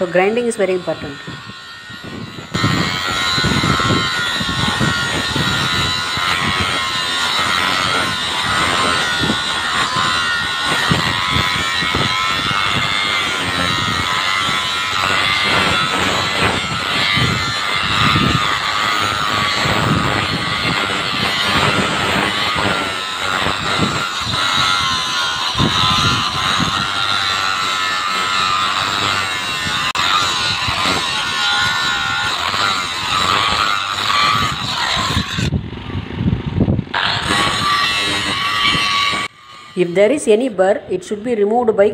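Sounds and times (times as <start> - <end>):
angle grinder grinding metal: 0.0 - 41.9.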